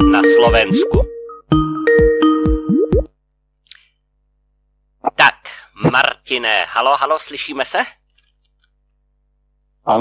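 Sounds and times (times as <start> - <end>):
electronic call ringing tone: 0.0 - 1.2.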